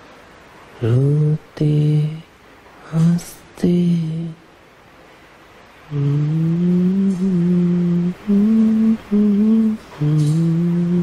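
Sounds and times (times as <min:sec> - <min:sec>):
man humming a slow melody: 0:00.8 - 0:04.4, 0:05.9 - 0:11.0.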